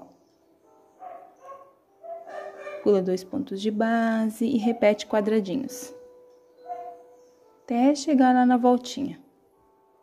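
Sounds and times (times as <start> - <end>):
dogs barking faintly: 1.0 - 3.0, 6.6 - 7.2.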